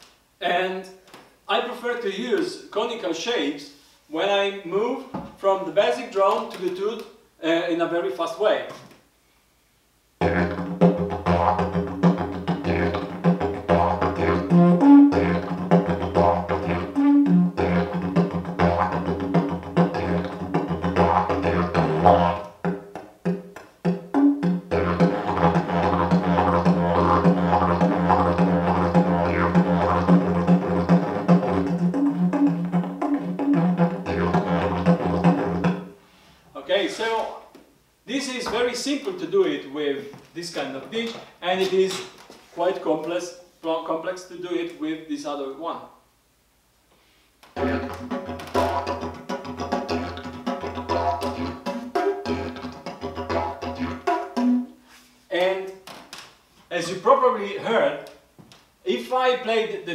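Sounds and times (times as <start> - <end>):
didgeridoo drone: 10.2 - 22.9, 23.9 - 35.8, 47.6 - 54.5
didgeridoo overblown toots: 10.2 - 36.0, 47.5 - 54.9.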